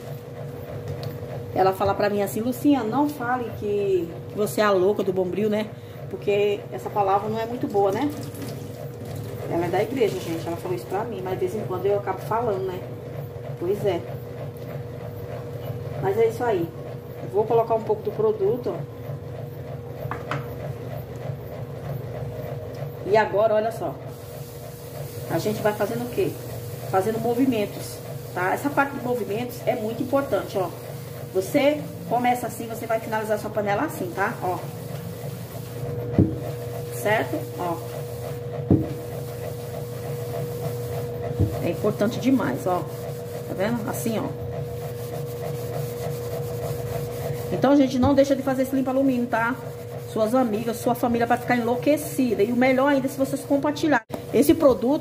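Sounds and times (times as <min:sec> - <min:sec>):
washing machine running: 0:00.0 - 0:55.0
thin steady hum: 0:23.1 - 0:53.6
sponge scrubbing a pan: 0:24.1 - 0:52.7.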